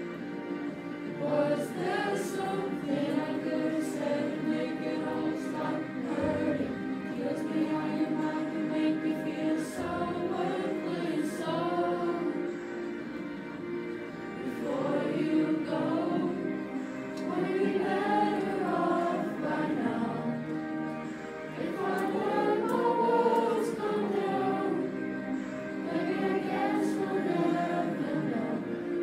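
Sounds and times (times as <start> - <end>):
children's choir singing: 0.0 - 29.0.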